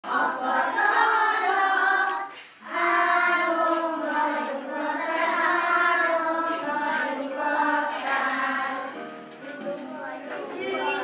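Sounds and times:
young children singing: 0:00.0 - 0:11.0.

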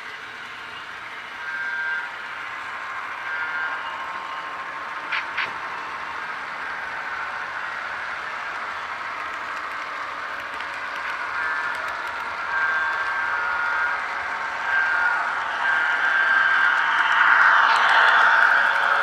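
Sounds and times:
passing model train: 0:00.0 - 0:19.0
model train wheels rattling on track: 0:05.0 - 0:19.0.

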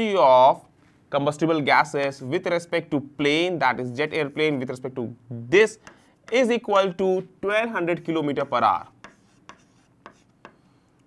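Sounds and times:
chalk tapping on chalkboard: 0:05.8 - 0:06.5, 0:08.4 - 0:10.6
chalk scratching on chalkboard: 0:08.2 - 0:10.6.

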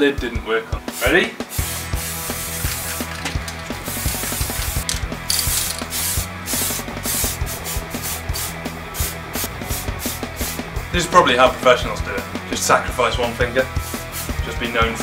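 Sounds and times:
low background music: 0:00.0 - 0:15.0
spray can hissing: 0:00.9 - 0:10.6, 0:13.8 - 0:14.4.

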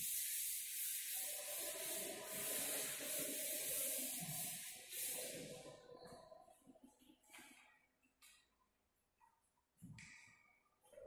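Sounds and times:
duster rubbing chalk off blackboard: 0:00.0 - 0:05.5.

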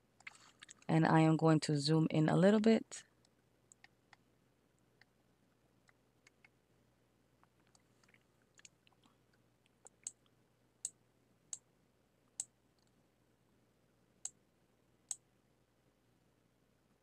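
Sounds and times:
computer mouse clicking: 0:03.2 - 0:04.2, 0:05.8 - 0:06.6, 0:09.8 - 0:11.6.

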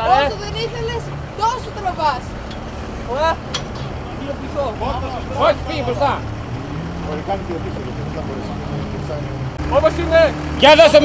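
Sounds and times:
diesel engine idling: 0:00.0 - 0:11.0
voices calling out: 0:00.0 - 0:11.0.

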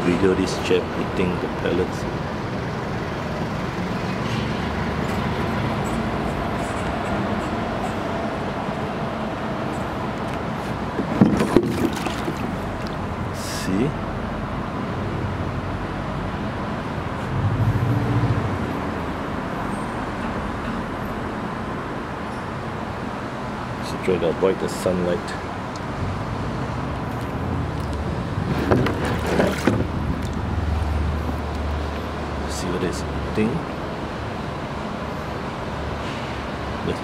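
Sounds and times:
background traffic noise: 0:00.0 - 0:37.0.

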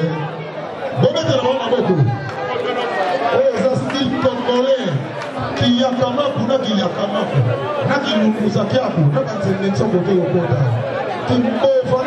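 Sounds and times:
crowd chatter: 0:00.0 - 0:12.0
people talking: 0:01.0 - 0:12.0.

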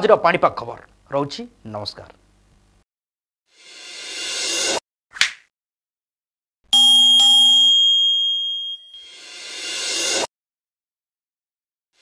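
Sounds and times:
bright bell chime: 0:06.8 - 0:09.7.

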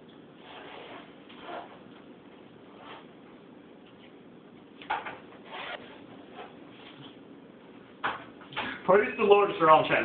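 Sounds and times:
cards scraping on table: 0:00.4 - 0:01.8, 0:04.9 - 0:07.2.

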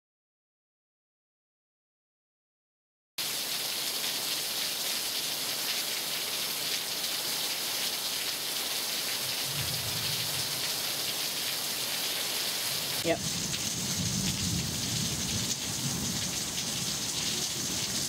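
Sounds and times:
steady rain hissing: 0:03.2 - 0:18.0.

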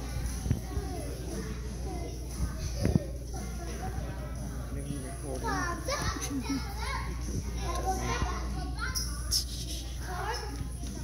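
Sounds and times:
young children's voices: 0:05.4 - 0:11.0.

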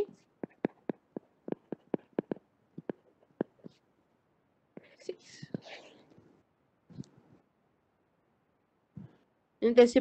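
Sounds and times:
stylus tapping tablet screen: 0:00.0 - 0:03.9, 0:04.7 - 0:06.3
soft whisper: 0:04.7 - 0:07.4.

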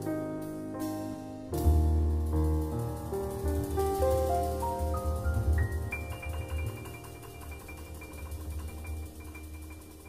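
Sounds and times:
pulsing bass: 0:01.6 - 0:10.0.

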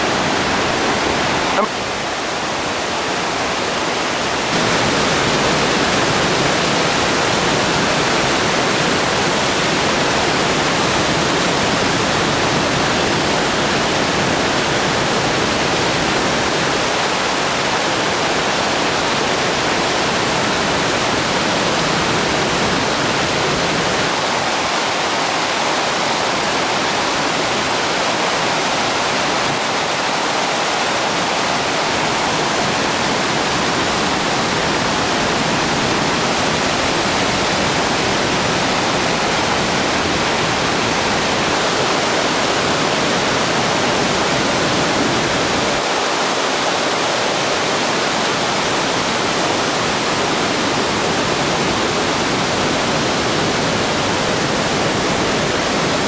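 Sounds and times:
waterfall rushing: 0:00.0 - 0:56.0.

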